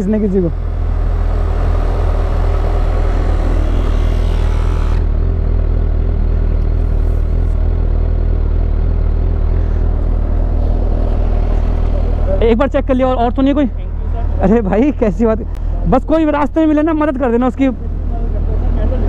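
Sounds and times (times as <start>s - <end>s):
tyre inflator buzzing hum: 0.6s - 5.8s.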